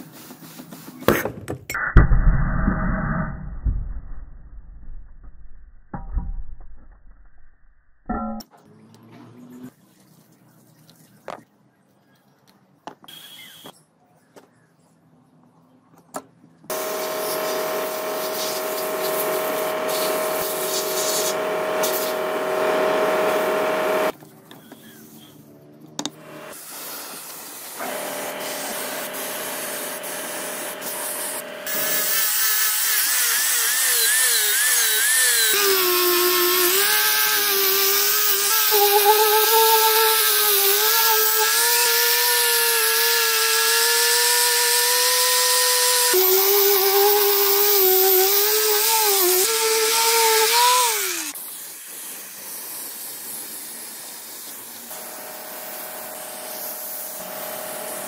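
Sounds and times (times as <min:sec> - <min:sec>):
angle grinder grinding metal: 0:16.7 - 0:24.2, 0:27.8 - 0:51.4.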